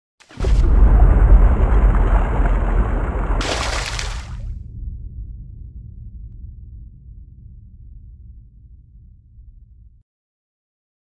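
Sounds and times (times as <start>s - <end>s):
deep boom: 0.3s - 10.0s
long low rumble: 0.4s - 10.0s.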